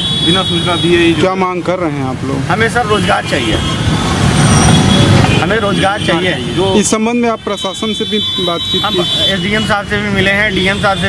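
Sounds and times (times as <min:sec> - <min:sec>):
man talking: 0:00.2 - 0:03.8, 0:05.4 - 0:11.0.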